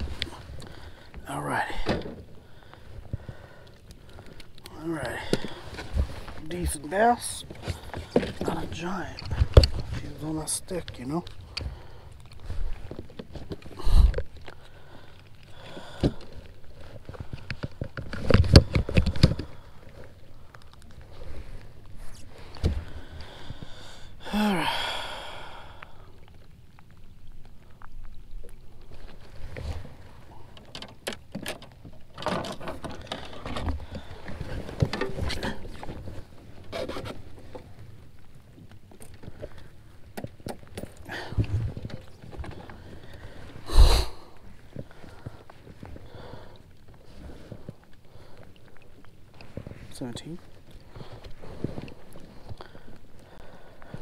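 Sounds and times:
knocks and scrapes on plastic kayak: 32.2 - 37.8.

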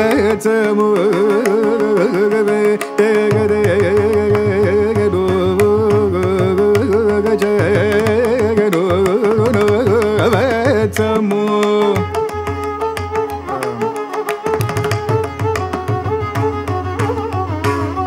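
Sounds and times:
man singing: 0.0 - 12.4, 13.2 - 14.2
violin: 0.0 - 18.0.

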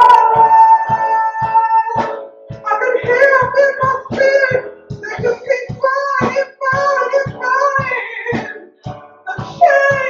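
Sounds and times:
band with steady low beat: 0.0 - 10.0.

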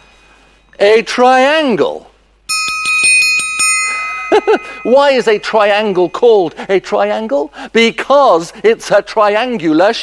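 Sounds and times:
triangle roll and ringing: 2.5 - 6.4.

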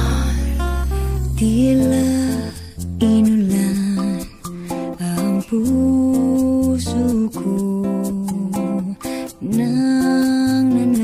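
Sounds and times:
acoustic guitar and bass: 0.0 - 11.0
wordless vocal melody: 0.0 - 11.0.

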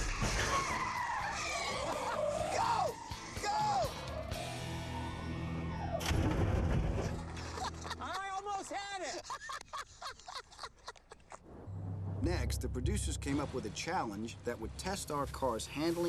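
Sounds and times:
background music: 0.0 - 8.3, 11.7 - 16.0
laughter: 7.2 - 11.4.

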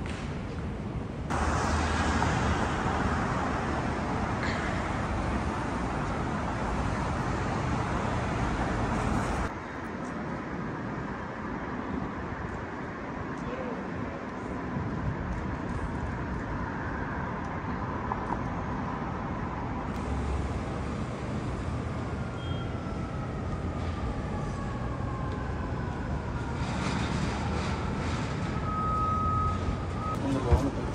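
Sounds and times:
city street traffic: 0.0 - 30.9.

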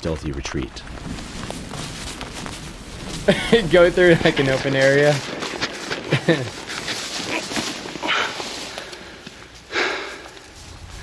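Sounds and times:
footsteps through grass: 0.8 - 11.0
person laughing: 3.2 - 4.7, 6.0 - 6.7
loud breaths: 8.0 - 11.0.

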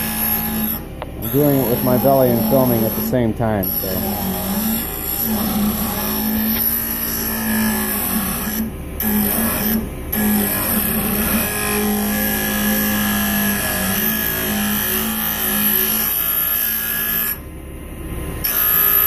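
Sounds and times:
grinding wheel hissing on steel: 0.0 - 17.2
grinder motor hum: 0.0 - 17.5.

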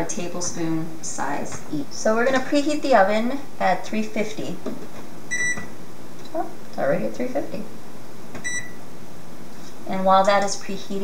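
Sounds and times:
oven control panel beep: 5.3 - 5.7, 8.4 - 8.8.

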